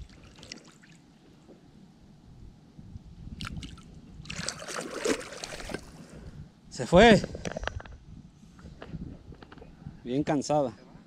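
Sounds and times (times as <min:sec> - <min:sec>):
water splashing: 0:03.4 - 0:06.0.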